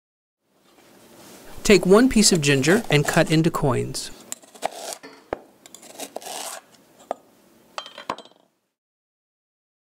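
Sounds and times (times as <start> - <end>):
knife scraping through root: 2.3 - 3.5, 4.3 - 5.1, 5.7 - 6.8.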